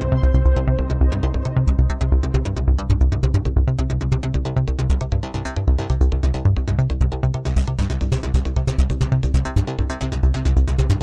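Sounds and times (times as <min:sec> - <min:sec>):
steady synth bass line: 0:00.0 - 0:11.0.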